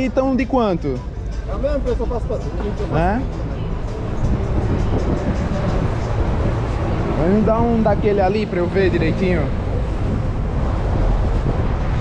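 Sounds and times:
street traffic rumbling: 0.0s - 12.0s
wind buffeting microphone: 4.0s - 12.0s.

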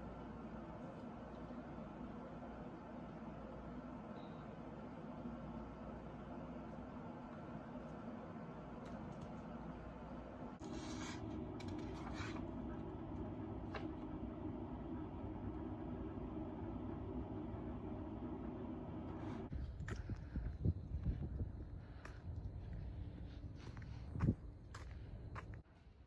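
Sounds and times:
room hum: 0.0s - 26.0s.

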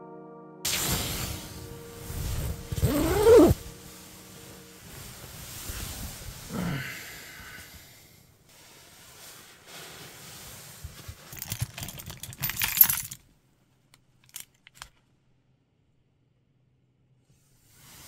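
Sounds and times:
man groaning yawn: 6.5s - 7.7s
keys jangling: 11.2s - 13.2s, 14.2s - 14.9s.

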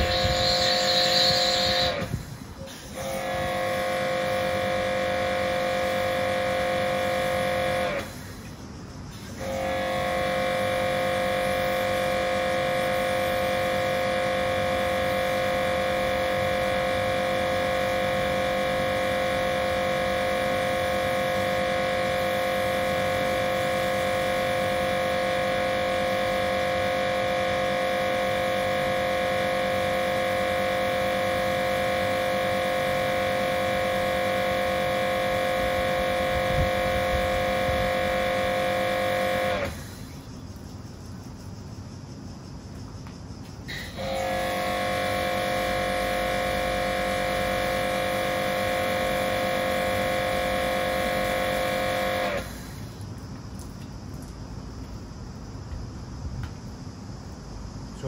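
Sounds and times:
pressure washer whine: 0.0s - 40.3s, 43.7s - 53.7s.

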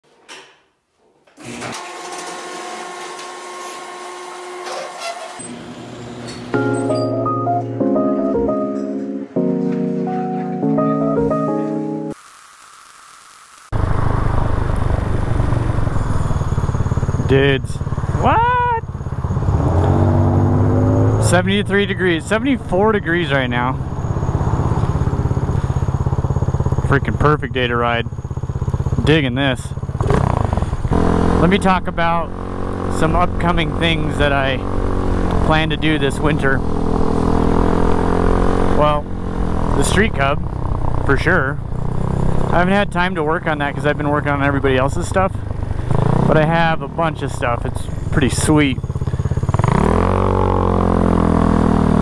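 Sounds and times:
garage door opener whining: 1.3s - 7.1s
scooter engine idling: 13.8s - 19.7s, 21.3s - 35.7s, 38.8s - 49.8s.

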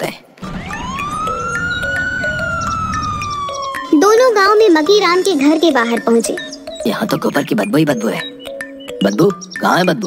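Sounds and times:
low rumble: 0.4s - 3.9s
police siren wailing: 0.4s - 5.6s.

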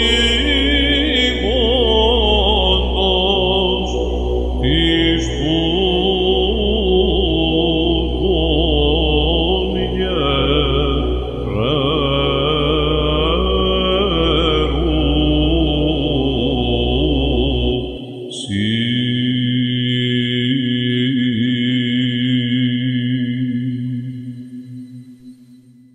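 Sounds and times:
man chanting a hymn: 0.0s - 24.1s
electronic drone: 0.0s - 25.9s
steady held tone: 0.0s - 25.9s.

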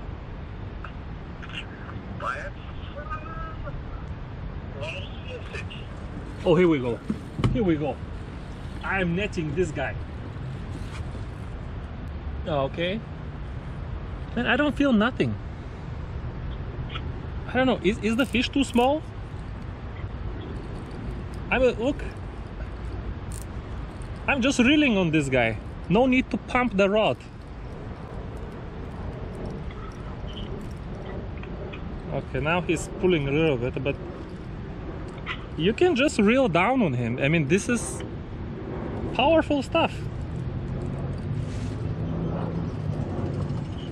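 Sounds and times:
low background rumble: 15.4s - 43.9s.

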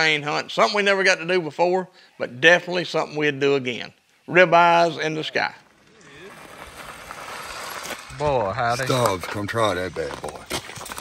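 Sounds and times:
bike tyres rolling over gravel: 5.7s - 11.0s.

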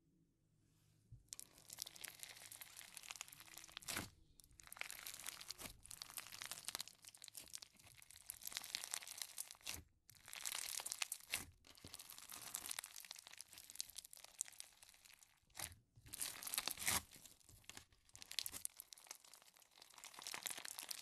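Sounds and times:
foam slime crackling: 1.4s - 21.0s.

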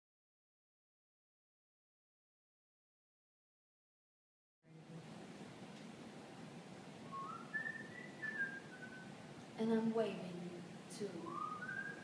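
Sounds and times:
person whistling rising notes: 7.1s - 9.1s, 11.2s - 12.0s.

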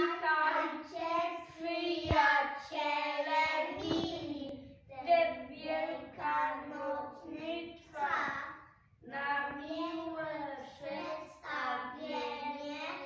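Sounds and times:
children singing together: 0.0s - 4.4s.

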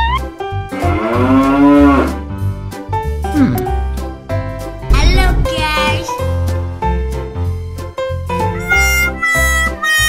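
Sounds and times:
cow mooing: 0.8s - 2.2s
children's music with bass beat: 4.8s - 10.0s.

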